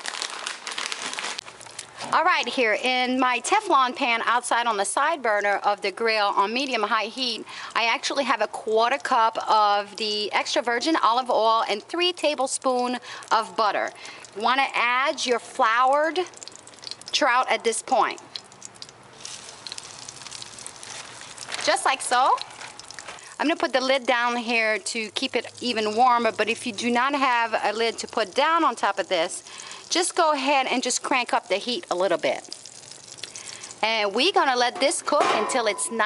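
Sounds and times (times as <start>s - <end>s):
plastic bag crinkling: 0.0s - 2.4s, 18.4s - 24.4s
small oil pops: 16.0s - 17.2s, 18.1s - 23.4s, 32.4s - 33.8s
fish sizzling in a skillet: 16.3s - 17.1s, 18.4s - 33.8s.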